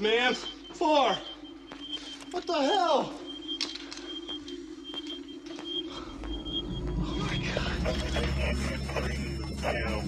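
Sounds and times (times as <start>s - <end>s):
electronic device humming: 0.0s - 10.0s
faint high beeps: 0.0s - 10.0s.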